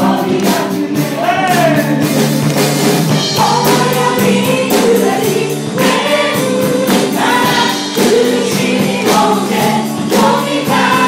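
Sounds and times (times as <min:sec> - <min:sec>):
congregation singing in unison: 0:00.0 - 0:11.0
worship band with drum kit: 0:00.0 - 0:11.0.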